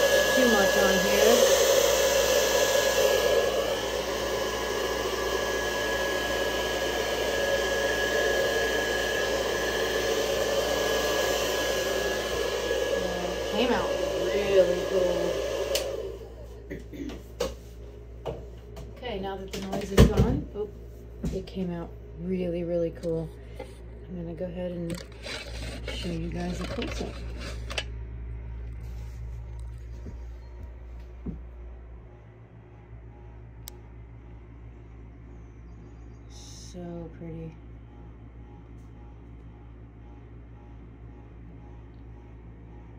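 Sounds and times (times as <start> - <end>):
hot-air blower rushing and whining: 0.0 - 18.5, 24.8 - 27.9
low room hum: 13.0 - 42.9.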